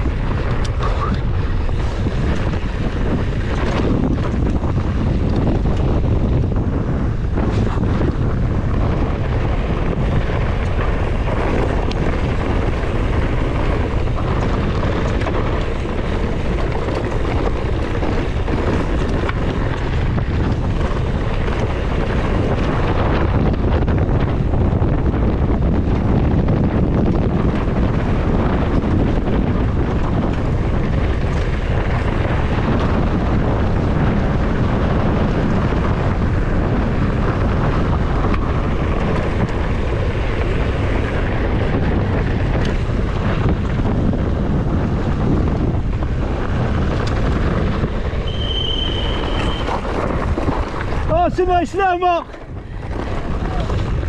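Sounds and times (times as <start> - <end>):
bike rattles and knocks: 0.0 - 54.0
tyres rumbling on loose dirt: 0.0 - 54.0
wind buffeting microphone: 0.0 - 54.0.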